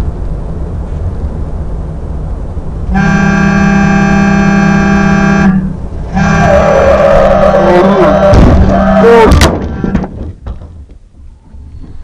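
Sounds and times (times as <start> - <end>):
road and engine rumble in car: 0.0 - 12.0
car horn: 2.9 - 10.0.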